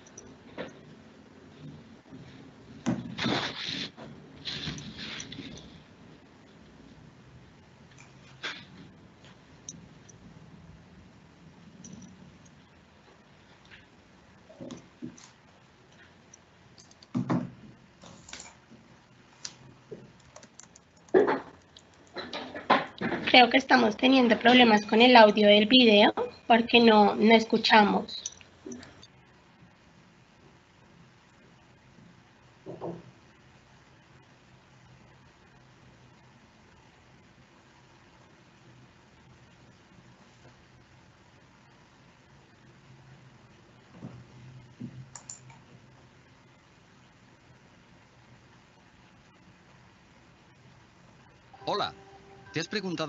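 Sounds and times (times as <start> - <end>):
low steady hum: 0.0 - 53.0
keyboard typing: 14.5 - 17.4, 19.4 - 22.2, 44.9 - 45.7
sharp computer clicks: 16.7 - 17.2, 19.4 - 22.2, 45.1 - 45.6.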